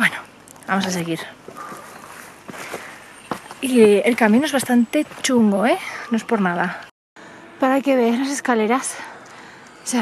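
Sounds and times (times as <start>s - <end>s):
footsteps on hiking trail: 0.8s - 6.9s.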